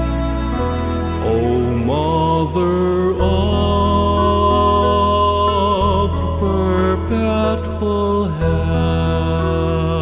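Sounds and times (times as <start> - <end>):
held low bass notes: 0.0 - 10.0
slow melody with vibrato: 0.0 - 10.0.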